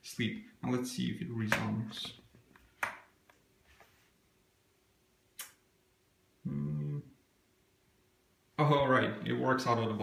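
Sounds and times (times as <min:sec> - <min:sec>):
faint steady hum: 0:00.0 - 0:10.0
laptop clicks and taps: 0:02.8 - 0:03.1.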